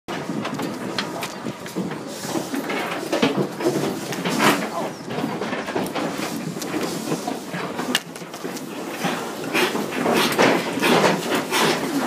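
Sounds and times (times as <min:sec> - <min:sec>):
pigs grunting: 0:00.2 - 0:12.0.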